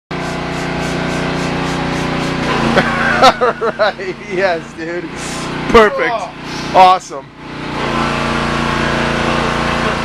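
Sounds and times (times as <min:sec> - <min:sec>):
engine humming with pulse: 0:00.1 - 0:10.0.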